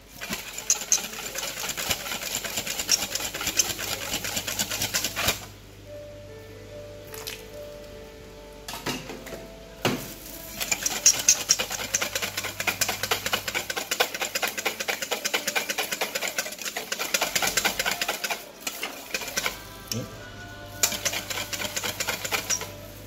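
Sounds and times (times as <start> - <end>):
whisk rattling in metal bowl: 0.0 - 5.5, 10.4 - 20.1, 20.7 - 23.0.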